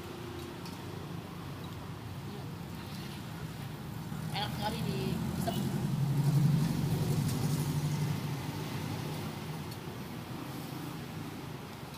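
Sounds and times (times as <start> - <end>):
vehicle engine passing by: 2.8 - 9.6.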